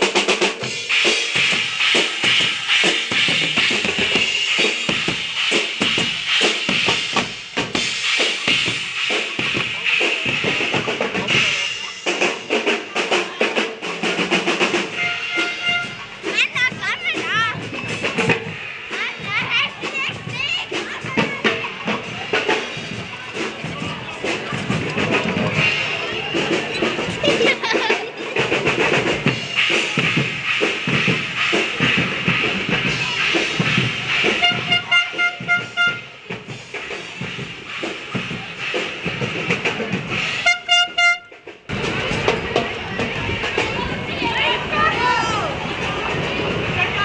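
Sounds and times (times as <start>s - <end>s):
busy parade noise: 0.0s - 47.0s
drum beats: 0.0s - 47.0s
music: 0.0s - 47.0s
children shouting: 11.1s - 29.9s, 41.7s - 47.0s
horn blowing short blasts: 14.9s - 16.0s, 34.4s - 36.1s, 40.4s - 41.4s.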